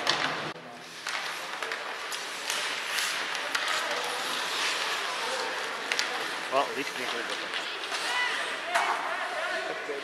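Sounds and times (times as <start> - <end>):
skates scraping on ice: 0.0 - 10.0
stick and puck clicks: 5.6 - 8.1.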